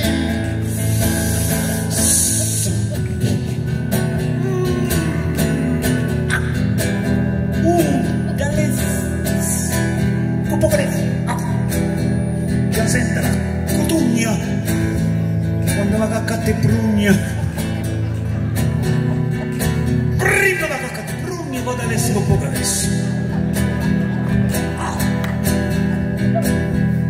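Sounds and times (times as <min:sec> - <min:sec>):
man singing: 0:00.0 - 0:11.8, 0:15.6 - 0:17.6
acoustic guitar playing: 0:00.0 - 0:27.0.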